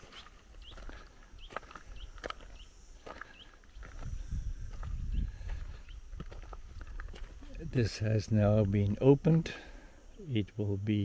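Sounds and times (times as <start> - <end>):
footsteps on dry soil and grass: 0.0 - 9.8.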